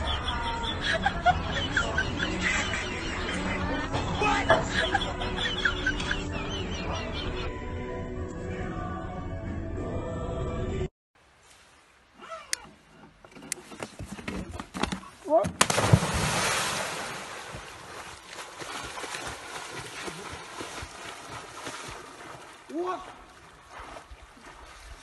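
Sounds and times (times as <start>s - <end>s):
person splashing into lake: 15.6s - 25.0s
water churning and sloshing: 15.6s - 25.0s.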